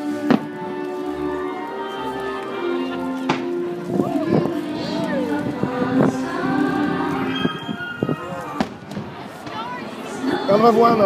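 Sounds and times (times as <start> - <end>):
music over loudspeakers: 0.0 - 8.9, 10.0 - 11.0.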